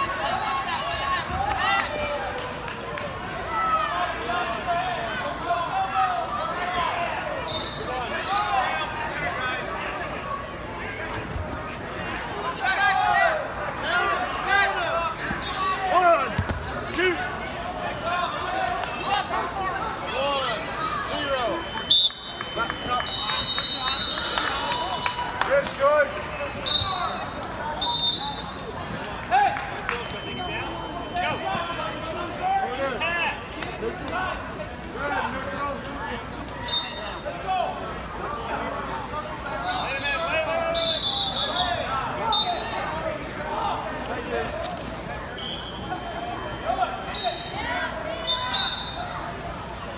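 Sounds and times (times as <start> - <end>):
spectators and coaches calling out: 0.0 - 49.9
referee's whistle: 7.4 - 8.6, 15.3 - 15.8, 21.4 - 25.3, 26.6 - 28.6, 36.6 - 37.2, 39.6 - 42.8, 45.3 - 49.2.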